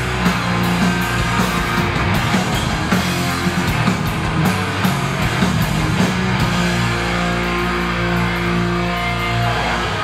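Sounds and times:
distorted guitars holding a chord: 0:00.0 - 0:10.0.

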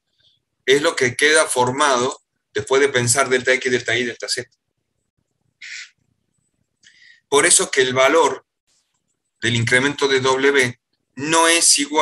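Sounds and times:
person speaking: 0:00.6 - 0:12.0.

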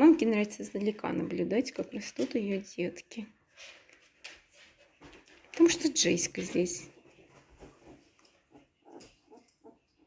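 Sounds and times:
puppies grunting: 0:08.4 - 0:10.0.

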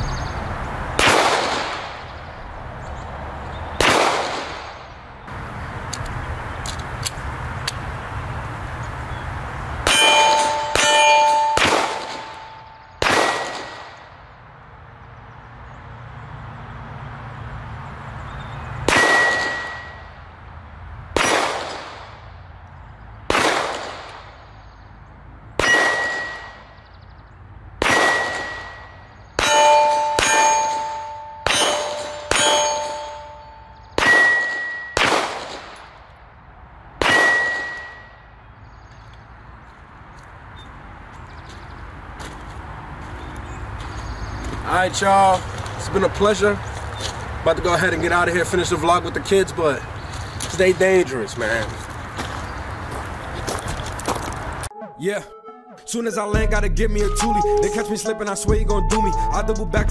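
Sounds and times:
pistol shots: 0:01.0 - 0:02.0, 0:03.8 - 0:04.8, 0:09.9 - 0:14.1, 0:18.9 - 0:20.0, 0:21.2 - 0:22.2, 0:23.3 - 0:24.4, 0:25.6 - 0:26.7, 0:27.8 - 0:33.4, 0:34.0 - 0:35.9, 0:37.0 - 0:38.1
steel target ringing: 0:09.8 - 0:13.6, 0:18.9 - 0:20.2, 0:25.6 - 0:26.8, 0:27.9 - 0:35.0, 0:37.0 - 0:38.2.

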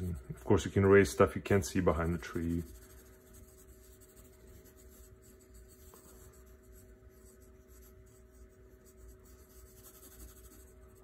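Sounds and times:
faint steady hum: 0:00.0 - 0:11.0
pencil sketching on paper: 0:00.0 - 0:11.0.

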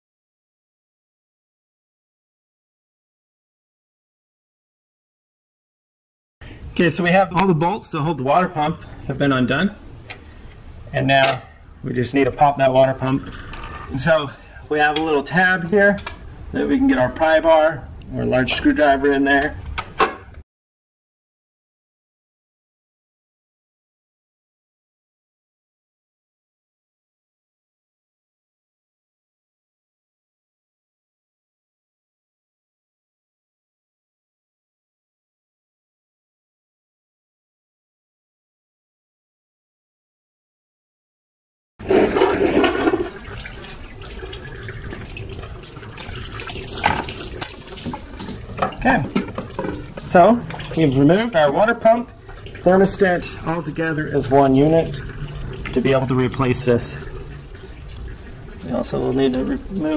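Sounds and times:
coolant gushing and trickling: 0:06.4 - 0:19.6, 0:41.8 - 0:59.9.

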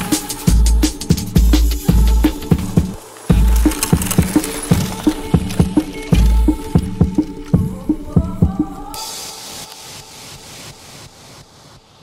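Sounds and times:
hissing noise wash: 0:01.7 - 0:12.0.

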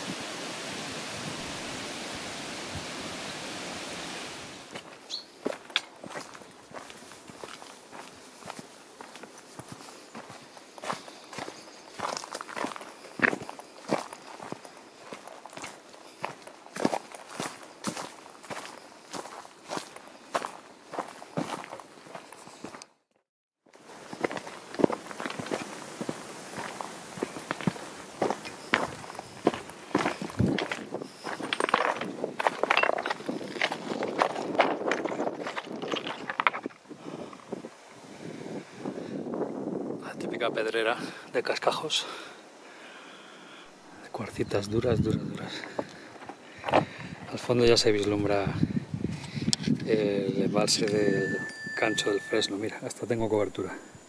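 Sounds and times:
footsteps on stony trail: 0:04.6 - 0:23.0, 0:23.7 - 0:37.7, 0:45.2 - 0:47.3.

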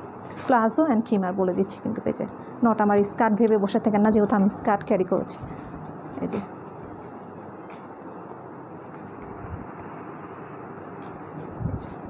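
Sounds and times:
steady rushing noise: 0:05.3 - 0:12.0.

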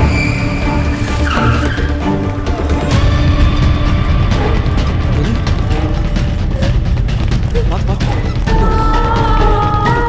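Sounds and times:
tyres squealing: 0:00.0 - 0:02.9
tense film score: 0:00.0 - 0:10.0.

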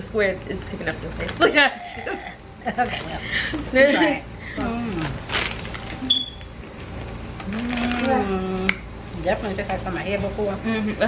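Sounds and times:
plastic snack bag rustling: 0:05.0 - 0:06.0.

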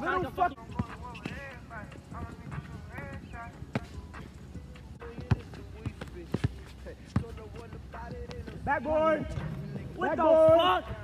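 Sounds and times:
basketball bouncing on asphalt: 0:00.2 - 0:09.5
distant shouts and talk: 0:08.6 - 0:11.0.

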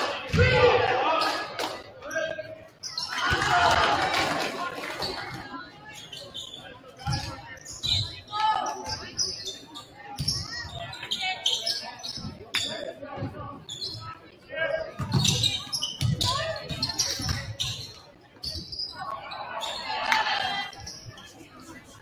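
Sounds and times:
people shouting in gym: 0:00.0 - 0:01.8, 0:03.0 - 0:04.4
sneaker squeaks: 0:02.1 - 0:03.3, 0:05.0 - 0:14.2, 0:15.0 - 0:21.4
cheering: 0:03.1 - 0:05.1, 0:19.4 - 0:20.7.

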